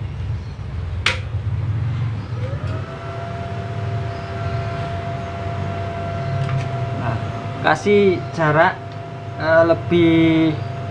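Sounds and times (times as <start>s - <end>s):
welding machine electrical hum: 0.6s - 10.9s
sharp click: 1.0s - 1.3s
siren-like tone: 2.2s - 10.9s.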